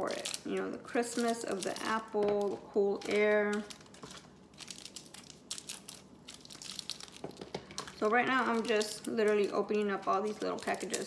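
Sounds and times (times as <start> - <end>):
plastic wrappers tearing and crinkling: 0.0 - 11.0.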